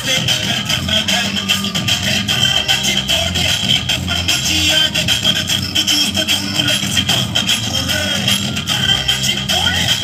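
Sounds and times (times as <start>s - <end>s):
loud dance music over sound system: 0.0s - 10.0s.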